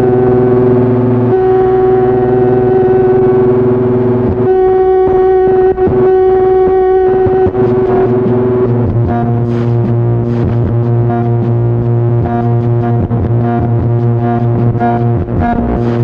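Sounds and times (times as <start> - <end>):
electronic keyboard chord: 0.0 - 16.0
low bass note: 0.0 - 16.0.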